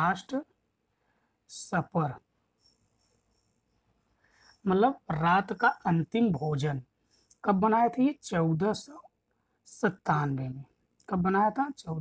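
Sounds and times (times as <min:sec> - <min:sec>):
high-pitched steady tone: 0:01.9 - 0:06.8.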